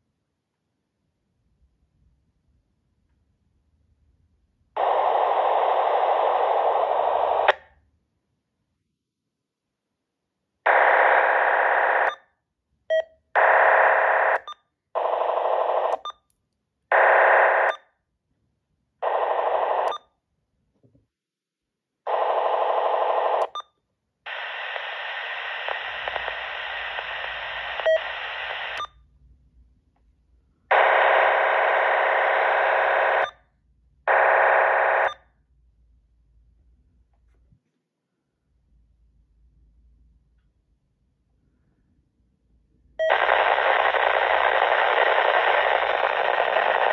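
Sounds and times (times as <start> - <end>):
scanner radio static bursts: 4.8 - 7.6, 10.7 - 12.2, 13.4 - 16.0, 16.9 - 17.8, 19.0 - 20.0, 22.1 - 23.6, 24.3 - 28.9, 30.7 - 33.4, 34.1 - 35.2, 43.0 - 46.9.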